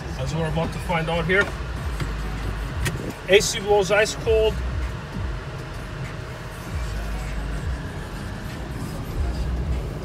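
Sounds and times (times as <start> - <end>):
air-conditioning fan rushing: 0.0 - 10.0
road and engine rumble: 0.0 - 10.0.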